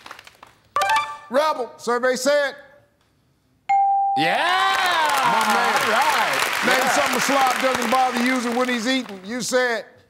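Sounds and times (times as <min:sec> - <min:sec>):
audience applauding: 0:00.0 - 0:01.1, 0:04.5 - 0:09.7
excited voices shouting: 0:04.4 - 0:07.5.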